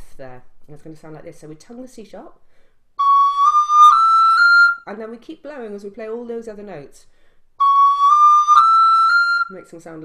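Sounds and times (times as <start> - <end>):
recorder playing rising notes: 3.0 - 4.8, 7.6 - 9.5.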